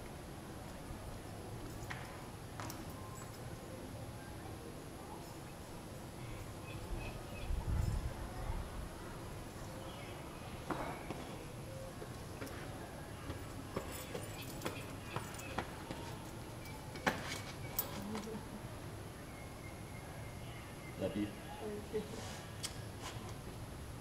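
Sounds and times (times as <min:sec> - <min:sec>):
shoes and hands tapping on stone: 0:12.0 - 0:16.3, 0:16.9 - 0:18.0.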